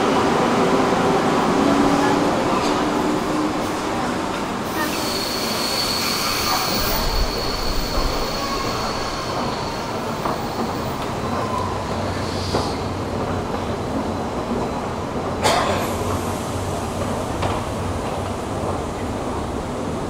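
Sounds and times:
train wheel squeal: 4.6s - 13.0s.

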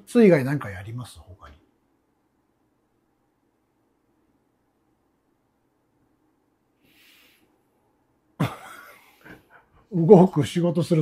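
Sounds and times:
person coughing: 8.4s - 9.2s.

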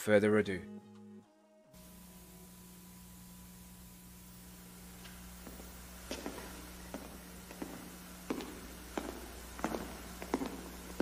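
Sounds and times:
hard-soled footsteps on stage floor: 5.0s - 11.0s.

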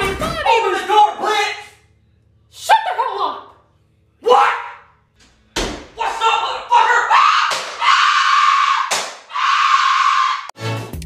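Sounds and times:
person screaming: 6.0s - 10.5s.

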